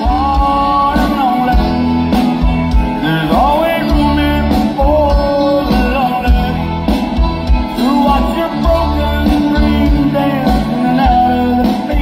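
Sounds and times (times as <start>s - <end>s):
live country band music: 0.0s - 12.0s.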